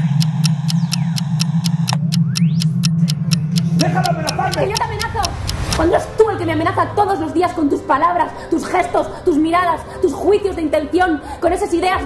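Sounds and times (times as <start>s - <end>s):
sharp even ticking: 0.0s - 6.9s
rising sweep: 0.0s - 8.5s
low drone: 0.0s - 10.0s.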